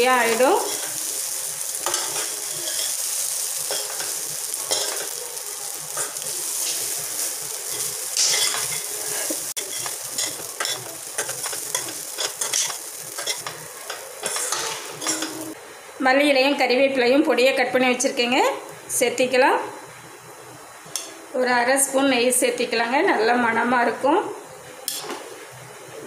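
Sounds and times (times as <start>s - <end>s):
frying sizzle: 0.0s - 15.6s
spoon scraping a pan: 0.3s - 1.1s, 1.7s - 5.2s, 5.9s - 15.5s.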